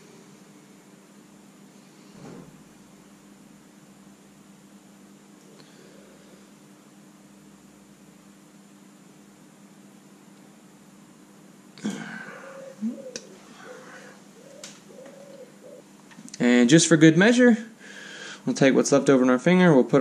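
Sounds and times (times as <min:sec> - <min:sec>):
low hum: 0:11.7 - 0:15.7.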